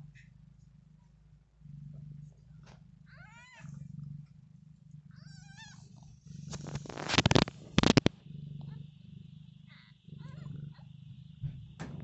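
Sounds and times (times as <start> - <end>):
cat purring: 0.0 - 12.0.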